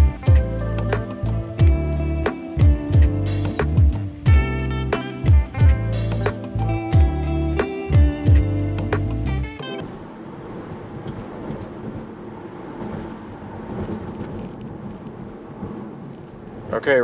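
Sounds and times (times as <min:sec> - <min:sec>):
background music: 0:00.0 - 0:09.8
road and tyre noise: 0:00.0 - 0:17.0.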